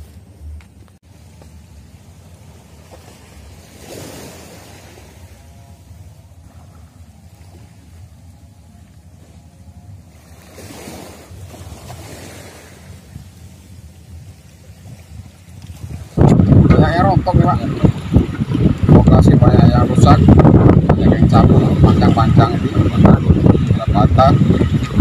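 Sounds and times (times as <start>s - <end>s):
wind rumbling on microphone: 0.0s - 25.0s.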